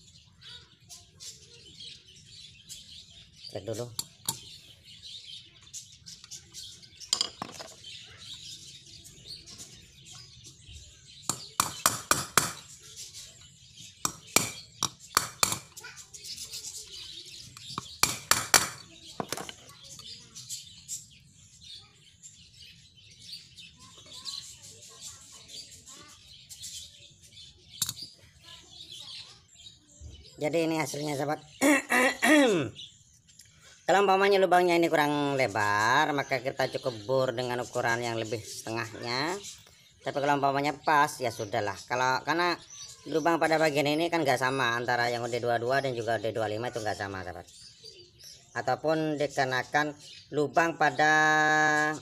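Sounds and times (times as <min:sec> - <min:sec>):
birds chirping: 0:00.0 - 0:52.0.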